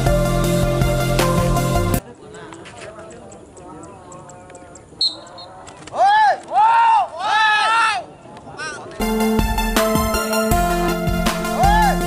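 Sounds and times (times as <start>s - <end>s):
faint crowd chatter: 2.0s - 9.2s
people shouting long calls: 6.0s - 8.8s, 11.4s - 12.0s.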